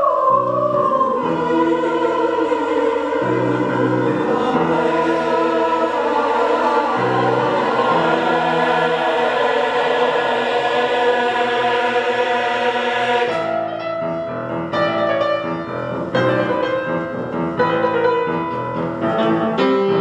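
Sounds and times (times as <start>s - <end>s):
choir singing in harmony: 0.0s - 18.5s
piano chords: 0.0s - 20.0s.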